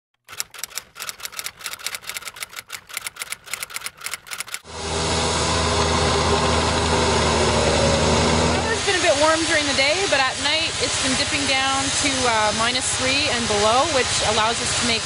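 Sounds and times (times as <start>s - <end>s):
typewriter keys clacking: 0.2s - 4.6s
diesel engine hum: 4.6s - 15.0s
snowmaking gun spraying: 4.6s - 15.0s.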